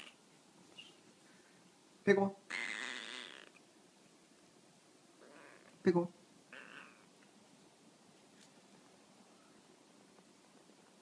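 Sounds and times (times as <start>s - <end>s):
cat meowing: 6.5s - 7.1s.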